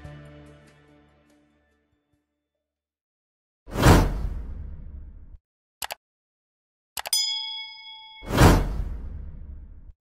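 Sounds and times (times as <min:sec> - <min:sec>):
bell ding: 0:07.1 - 0:08.8
whoosh: 0:08.2 - 0:09.9.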